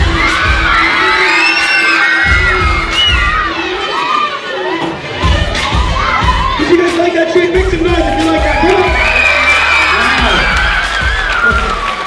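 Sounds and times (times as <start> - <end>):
children shouting and screaming: 0.0 - 6.8.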